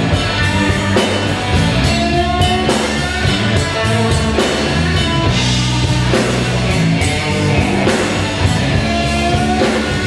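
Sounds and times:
bass guitar: 0.0s - 10.0s
drum kit with cymbals: 0.0s - 10.0s
electric guitar: 0.0s - 10.0s.

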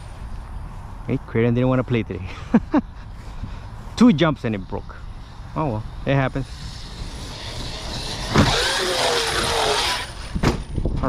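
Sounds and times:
electric motor whining: 4.9s - 10.9s.

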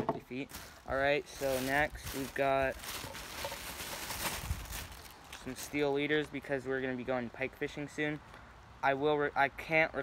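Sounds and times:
plastic bag rustling: 0.3s - 6.0s.

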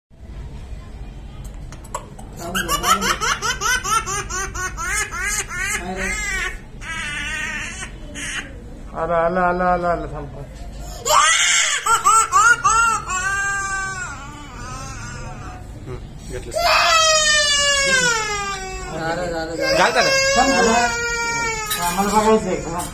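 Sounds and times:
toddler crying: 11.0s - 15.6s, 16.6s - 22.9s.

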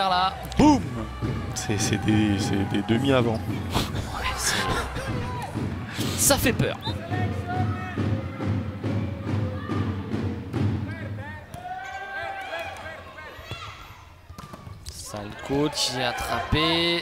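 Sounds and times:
rhythmic beat from stands: 0.0s - 11.2s
crowd voices: 0.0s - 17.0s.

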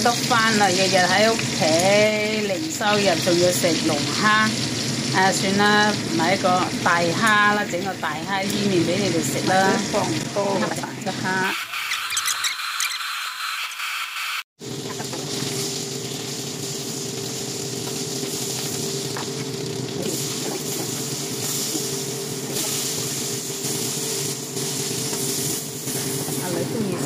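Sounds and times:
oil sizzling in a frying pan: 0.0s - 12.6s, 14.6s - 27.0s.

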